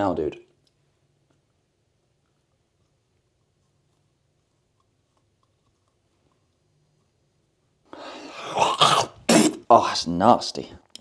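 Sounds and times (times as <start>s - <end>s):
man gagging groan: 8.3s - 9.7s.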